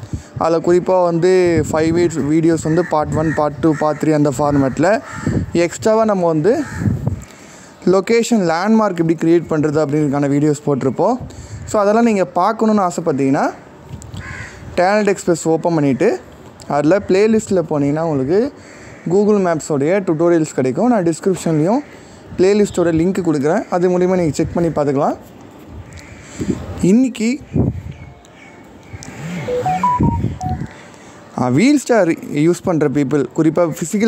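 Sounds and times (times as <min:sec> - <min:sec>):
low sounds: 0:29.1 - 0:30.7
phone electronic tones: 0:29.5 - 0:30.7.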